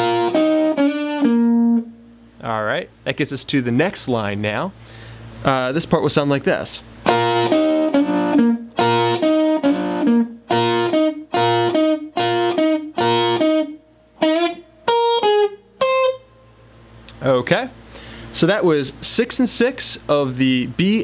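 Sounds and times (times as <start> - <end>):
electric guitar lick: 0.0 - 2.3, 7.0 - 16.4.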